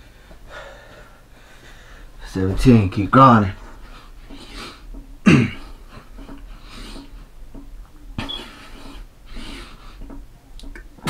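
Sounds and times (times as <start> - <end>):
man breathing hard: 0.0 - 2.2.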